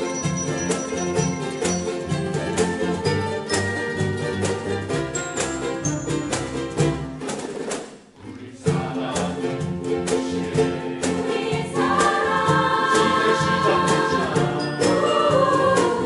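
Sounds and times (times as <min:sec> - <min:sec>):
glockenspiel: 0:00.0 - 0:07.0, 0:14.4 - 0:16.0
bass: 0:00.0 - 0:07.3, 0:08.2 - 0:16.0
ukulele ensemble: 0:00.0 - 0:16.0.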